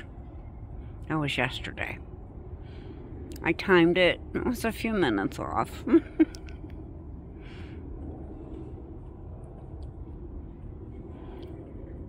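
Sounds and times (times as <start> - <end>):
low outdoor background rumble: 0.0 - 12.0
person laughing: 5.8 - 6.5.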